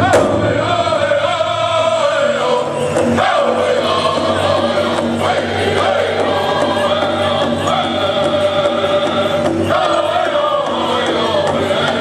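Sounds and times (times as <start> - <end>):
group singing in unison: 0.0 - 12.0
large drum beat: 0.0 - 12.0.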